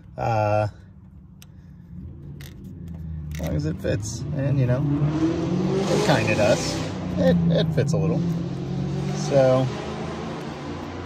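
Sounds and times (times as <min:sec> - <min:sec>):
low engine-like rumble: 0:00.0 - 0:04.8.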